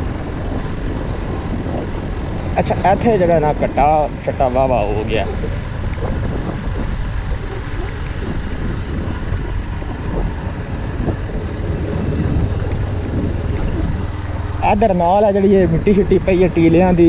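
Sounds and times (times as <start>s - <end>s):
motorcycle engine cruising: 0.0s - 17.0s
road noise: 0.0s - 17.0s
wind noise: 0.0s - 17.0s.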